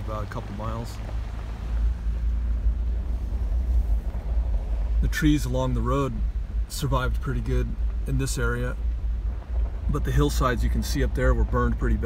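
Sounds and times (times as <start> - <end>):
car driving on gravel: 0.0 - 12.0.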